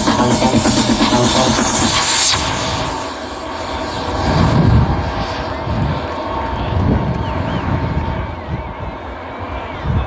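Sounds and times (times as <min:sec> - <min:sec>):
electronic dance music: 0:00.0 - 0:03.6.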